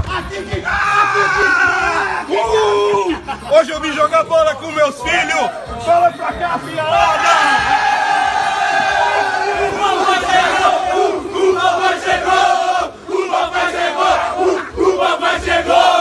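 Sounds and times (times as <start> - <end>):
men shouting and cheering: 0.0 - 4.0, 4.6 - 16.0.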